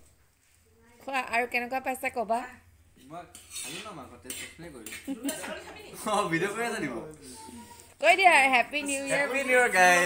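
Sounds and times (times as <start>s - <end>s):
cookware and cutlery clinking: 3.0s - 5.8s.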